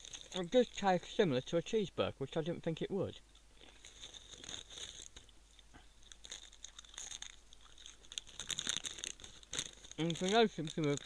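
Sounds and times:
person chewing crisps: 0.0s - 0.9s, 3.6s - 11.0s.

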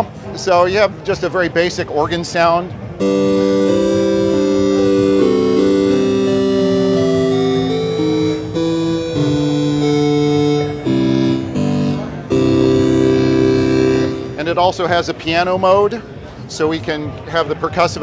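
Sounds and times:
organ playing sustained chords: 3.0s - 14.9s.

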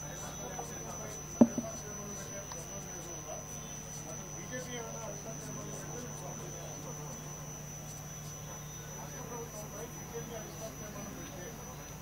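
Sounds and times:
thin high whine: 0.0s - 11.8s
faint background talk: 0.0s - 12.0s.

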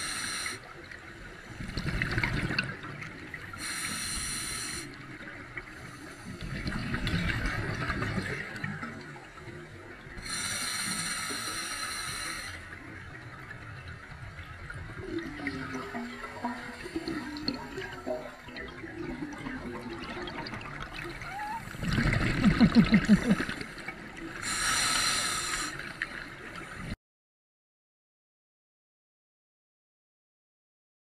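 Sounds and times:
regulator hissing inhalation: 0.0s - 0.6s, 3.6s - 4.9s, 10.2s - 12.6s, 24.4s - 25.8s
exhaled bubbles underwater: 1.2s - 10.5s, 12.2s - 24.6s.

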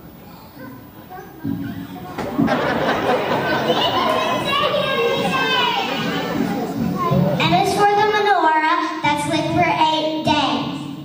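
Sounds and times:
many children's voices: 0.0s - 11.0s.

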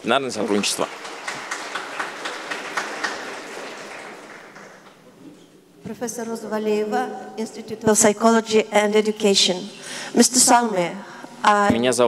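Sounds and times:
audience applause: 0.0s - 5.0s.

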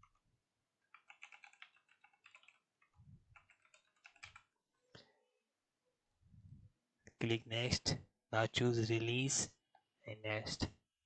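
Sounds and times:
typing on keyboard: 0.9s - 4.5s.

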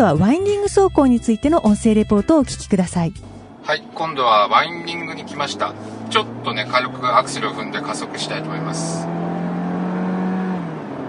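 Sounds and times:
car engine accelerating: 3.2s - 11.0s.

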